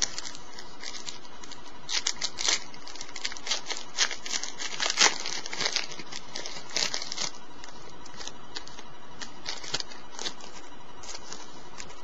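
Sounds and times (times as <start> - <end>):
wrapper tearing and crinkling: 0.0 - 12.0.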